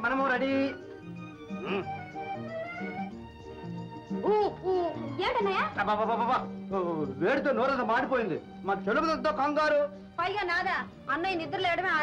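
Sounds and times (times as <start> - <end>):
person's exclamations: 1.6 - 2.0.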